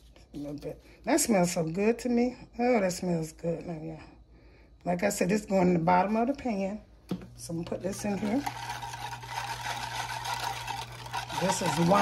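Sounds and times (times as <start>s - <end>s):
whisk swishing in liquid: 7.8s - 12.0s.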